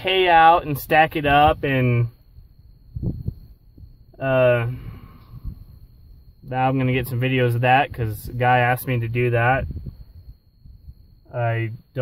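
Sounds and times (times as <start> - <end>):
faint low thumps: 1.2 - 6.8.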